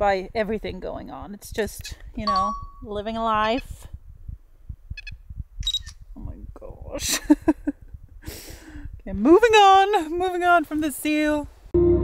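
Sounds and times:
wind buffeting microphone: 0.0s - 11.7s
high beep: 2.2s - 3.0s.

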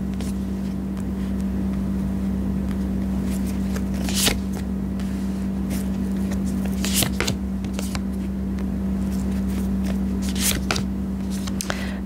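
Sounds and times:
steady low hum: 0.0s - 12.0s
cards handled on cloth: 2.2s - 11.8s.

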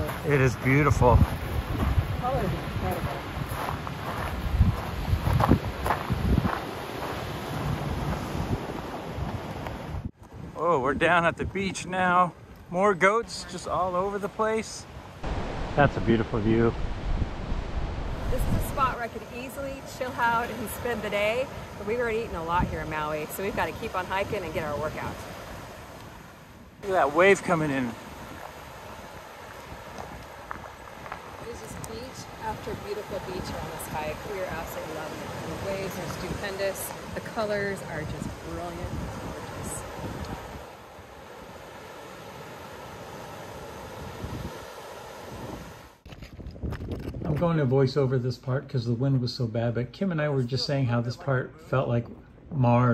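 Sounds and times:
wind buffeting microphone: 0.0s - 11.5s, 15.2s - 25.7s, 28.2s - 40.7s, 43.9s - 47.6s
surf breaking on rocks: 15.2s - 25.2s.

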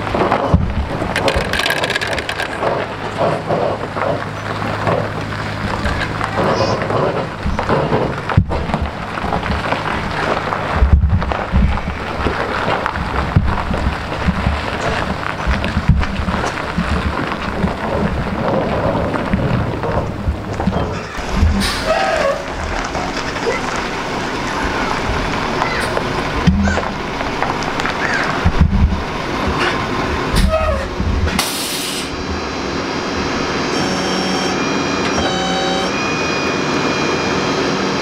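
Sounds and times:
road and wind rumble: 0.0s - 38.0s
truck engine drone: 0.0s - 38.0s.

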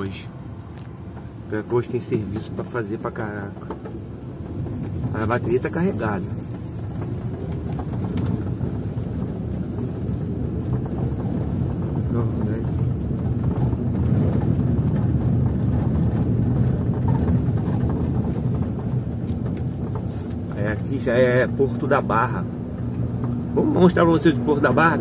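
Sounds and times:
car engine running: 0.0s - 25.0s
tyres rumbling over cobblestones: 0.0s - 25.0s.

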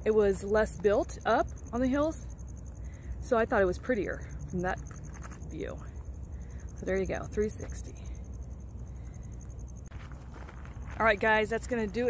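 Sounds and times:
faint footsteps on gravel: 4.7s - 5.8s, 9.5s - 12.0s.

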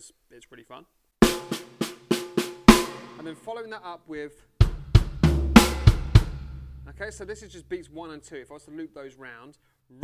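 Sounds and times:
snare drum strokes: 1.2s - 3.3s
bass drum kicks: 4.6s - 7.6s.

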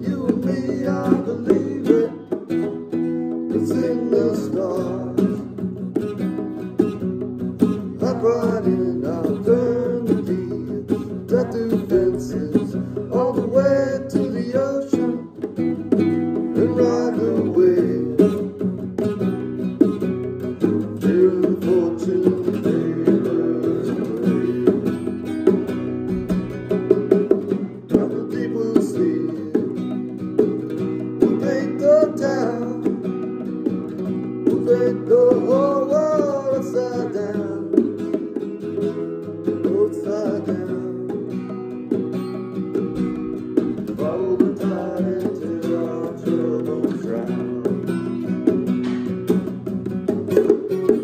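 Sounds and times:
acoustic guitar strumming: 0.0s - 51.0s.

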